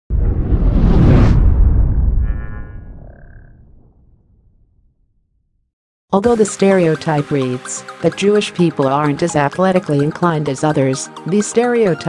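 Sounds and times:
deep cinematic boom: 0:00.1 - 0:05.7.

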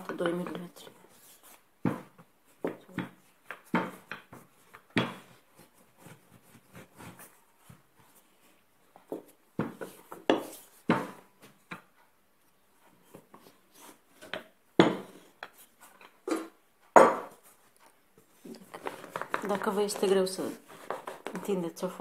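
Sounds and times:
rolling pin rolling dough: 0:00.0 - 0:22.0
rolling pin knocking on table: 0:16.3 - 0:17.4.

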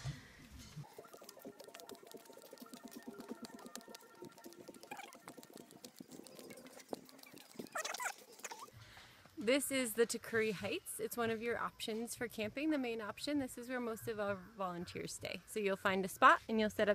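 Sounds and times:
footsteps on dirt path: 0:02.2 - 0:09.7.

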